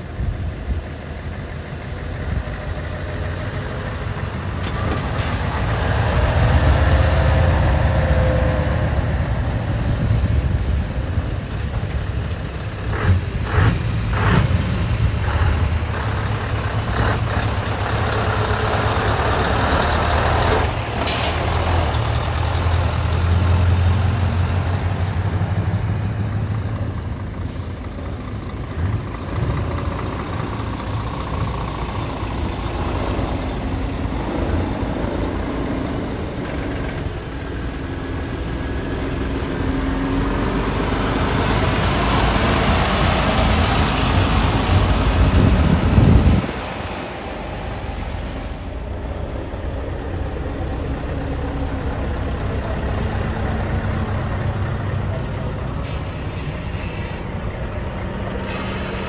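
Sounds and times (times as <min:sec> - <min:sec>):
trucks driving past: 0:00.0 - 0:59.0
air brake hiss: 0:58.4 - 0:59.0.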